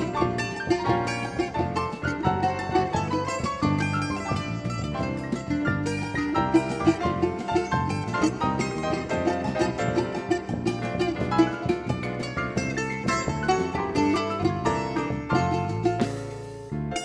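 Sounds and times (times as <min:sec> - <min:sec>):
drum kit: 0:00.0 - 0:17.0
electric bass: 0:00.0 - 0:17.0
mandolin plucked notes: 0:00.0 - 0:17.0.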